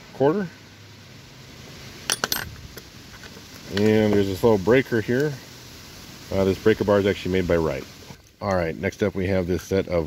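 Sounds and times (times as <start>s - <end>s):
metal tools clinking: 2.1s - 2.6s.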